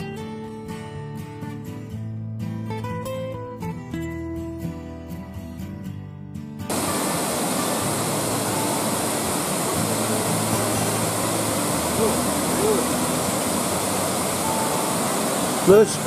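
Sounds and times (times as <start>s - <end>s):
acoustic guitar music: 0.0s - 16.0s
stream cascading over rocks: 6.7s - 16.0s.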